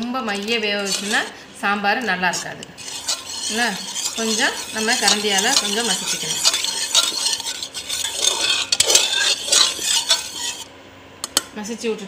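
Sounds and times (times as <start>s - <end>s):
metal ladle scraping a pot: 0.0s - 10.7s.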